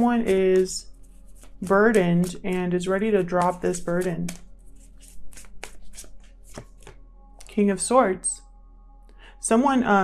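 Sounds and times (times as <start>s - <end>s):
cards being shuffled: 0.0s - 7.5s.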